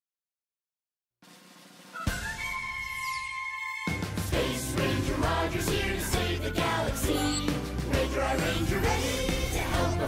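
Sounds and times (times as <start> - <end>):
cartoon theme music: 1.9 - 10.0.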